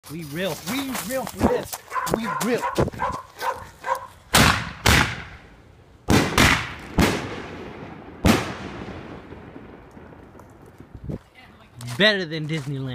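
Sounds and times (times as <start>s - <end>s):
firework bangs with echo: 4.3s - 5.4s, 6.1s - 10.8s.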